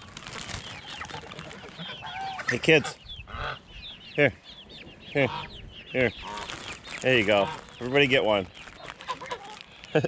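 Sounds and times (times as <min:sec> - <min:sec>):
poultry chirping and clucking: 0:00.0 - 0:10.0.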